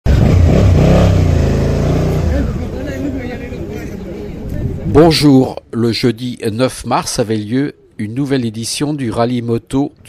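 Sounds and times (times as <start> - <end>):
motorcycle engine pulling away: 0.1 - 3.0.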